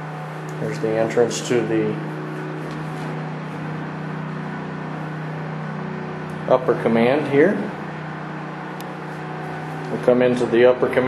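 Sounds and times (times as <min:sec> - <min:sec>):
generator running: 0:00.0 - 0:11.0.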